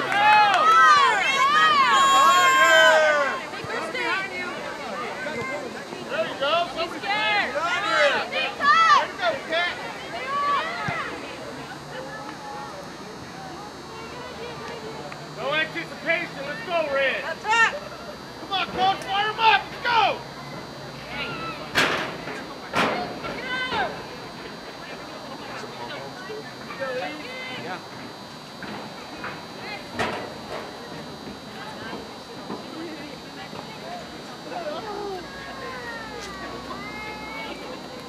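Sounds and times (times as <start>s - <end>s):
distant voices shouting: 0.0s - 38.0s.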